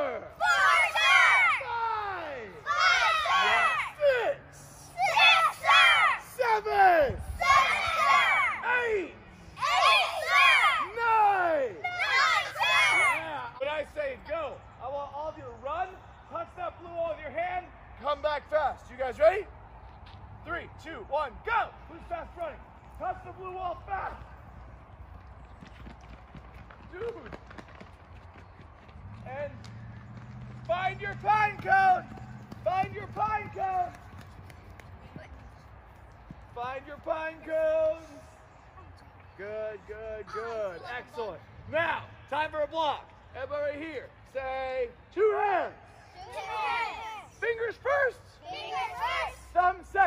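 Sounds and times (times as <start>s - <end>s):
children shouting together: 0.4s - 4.0s, 4.8s - 6.3s, 7.3s - 8.7s, 9.6s - 11.0s, 11.8s - 13.4s, 46.1s - 47.3s, 48.4s - 49.5s
children running on dry grass: 22.2s - 38.2s.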